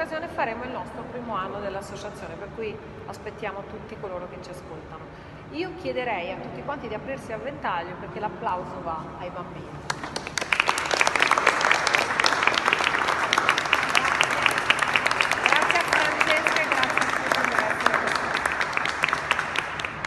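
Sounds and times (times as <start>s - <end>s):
people clapping: 9.8s - 20.0s.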